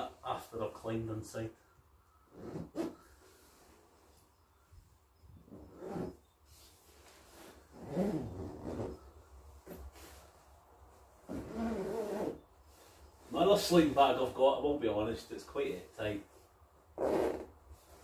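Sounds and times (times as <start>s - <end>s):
sleeping bag rustling: 5.4s - 14.1s, 17.0s - 18.0s.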